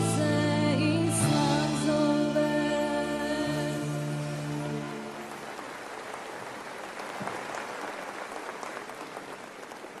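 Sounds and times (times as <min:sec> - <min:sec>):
audience applauding: 0:04.4 - 0:10.0.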